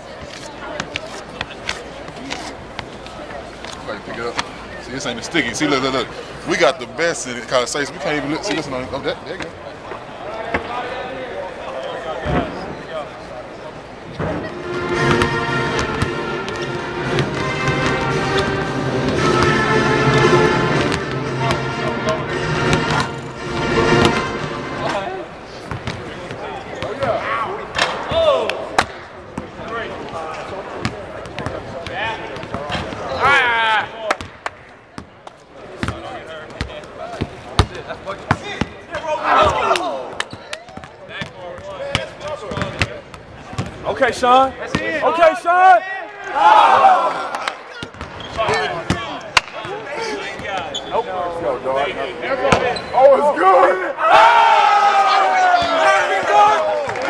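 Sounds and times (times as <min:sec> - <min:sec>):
music: 0:14.6 - 0:25.0
players shouting: 0:38.4 - 0:40.3, 0:44.2 - 0:50.7, 0:52.2 - 0:57.0.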